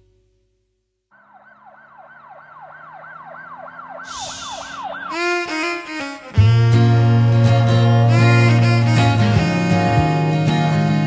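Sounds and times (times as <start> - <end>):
emergency vehicle siren: 1.1 - 6.4
short high hiss: 4.1 - 4.8.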